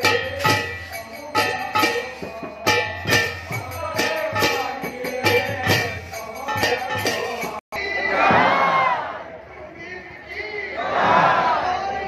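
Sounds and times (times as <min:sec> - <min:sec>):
devotional music with percussion: 0:00.0 - 0:07.6
crowd shouting together: 0:07.8 - 0:09.4, 0:10.6 - 0:12.0.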